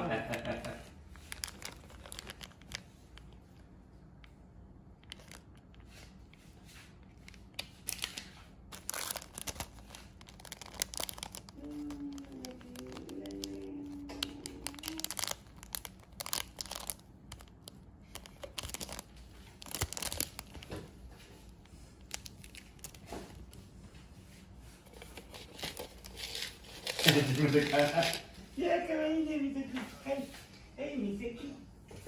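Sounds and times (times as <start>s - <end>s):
plastic packet crinkling and ripping: 0.1s - 3.6s, 4.8s - 6.2s, 7.0s - 21.0s, 22.0s - 23.6s, 24.9s - 28.3s
faint voice-like tone: 11.6s - 15.1s.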